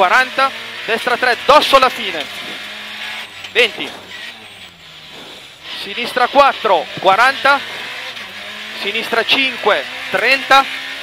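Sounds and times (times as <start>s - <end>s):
rally car engine from cockpit: 0.0s - 11.0s.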